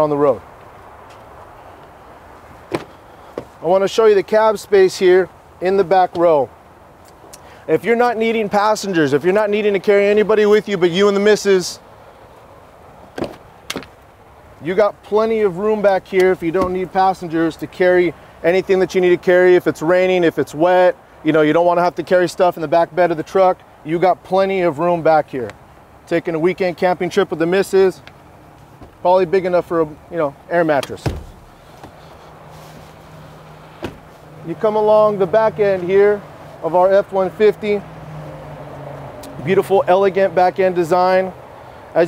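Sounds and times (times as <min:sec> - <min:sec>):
faint background noise: 0:00.0 - 0:42.0
car door latch clicks: 0:30.8 - 0:31.6.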